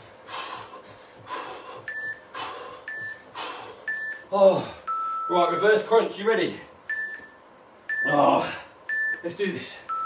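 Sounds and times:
man breathing heavily: 0.0 - 5.2.

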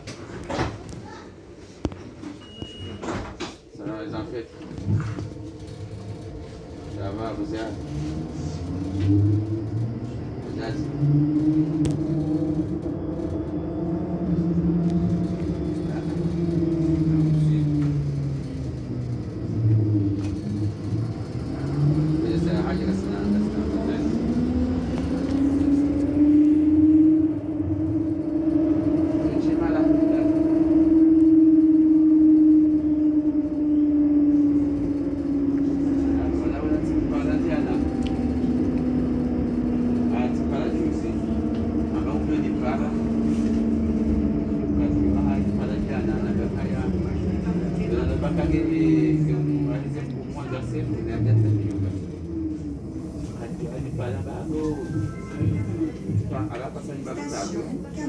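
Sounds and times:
low running noise: 0.0 - 58.0
tram electric drive whining: 0.0 - 58.0.

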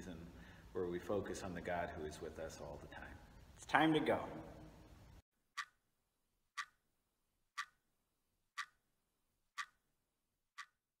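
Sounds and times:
clock ticking: 5.5 - 5.8, 6.5 - 6.8, 7.5 - 7.9, 8.5 - 8.9, 9.5 - 9.9, 10.5 - 10.8.

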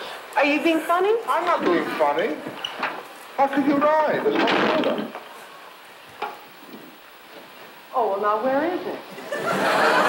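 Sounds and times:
old film soundtrack hiss and crackle: 0.0 - 10.0.

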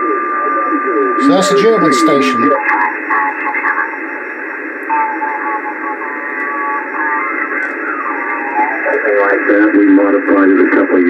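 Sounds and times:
faint voice over radio: 0.0 - 4.0, 4.9 - 11.0
radio static hiss: 0.0 - 11.0.

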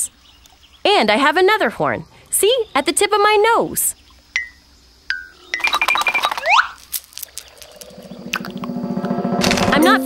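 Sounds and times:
bright metallic pings: 4.4 - 5.9
clicks with ringing tones: 4.4 - 6.5.

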